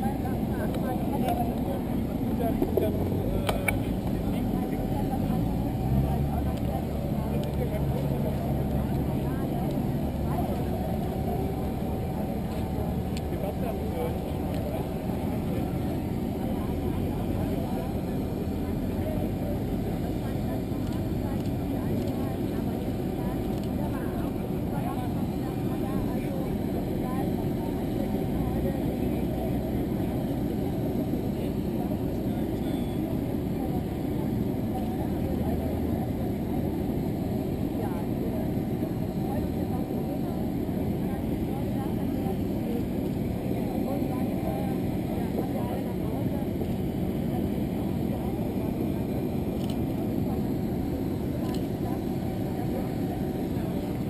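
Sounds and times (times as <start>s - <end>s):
crowd chatter: 0.0s - 54.0s
jet aircraft rumble and whine: 0.0s - 54.0s.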